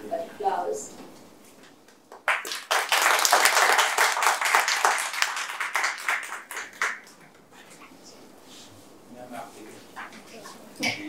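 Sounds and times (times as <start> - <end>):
audience applauding: 2.2 - 7.2.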